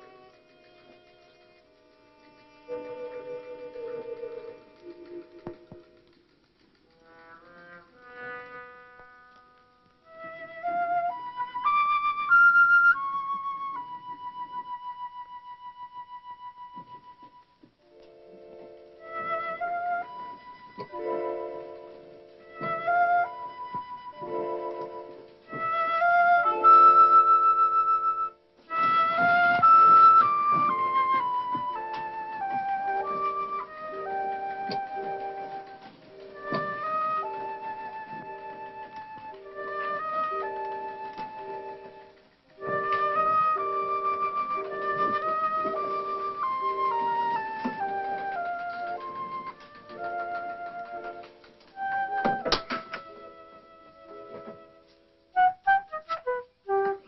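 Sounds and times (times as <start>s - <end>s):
orchestral music with flute melody: 2.2s - 6.0s, 7.0s - 57.0s.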